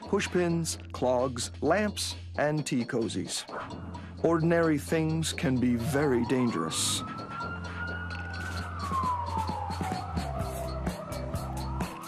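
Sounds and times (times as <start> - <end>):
siren wailing: 5.0 - 12.0.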